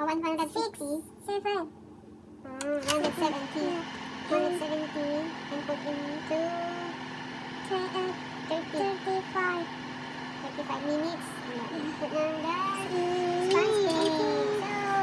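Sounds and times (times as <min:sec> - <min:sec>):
oven fan humming: 0:00.0 - 0:15.0
voices talking: 0:02.5 - 0:15.0.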